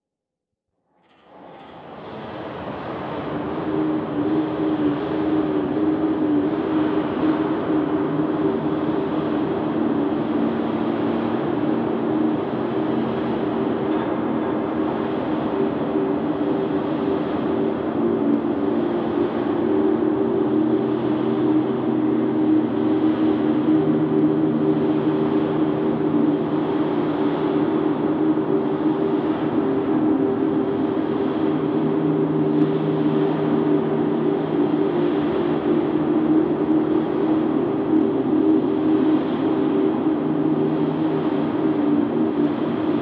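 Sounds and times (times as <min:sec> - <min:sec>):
dark ambient drone: 0:00.9 - 0:43.0.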